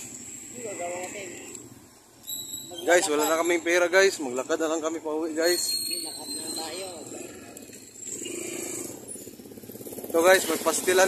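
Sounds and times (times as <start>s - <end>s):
small motorcycle engine running: 6.6s - 11.0s.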